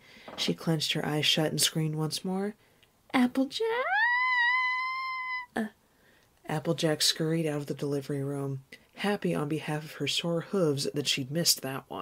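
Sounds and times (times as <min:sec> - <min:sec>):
person screaming a long high cry: 0:03.7 - 0:05.6.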